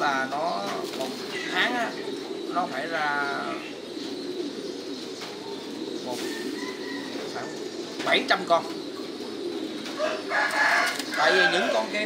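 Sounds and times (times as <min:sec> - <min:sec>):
pigeons cooing: 0:00.0 - 0:12.0
rooster crowing: 0:06.2 - 0:07.6, 0:10.0 - 0:11.8.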